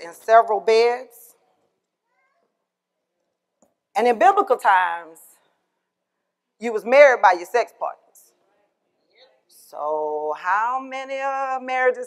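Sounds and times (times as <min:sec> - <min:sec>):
faint high-pitched cry: 0:02.0 - 0:02.7.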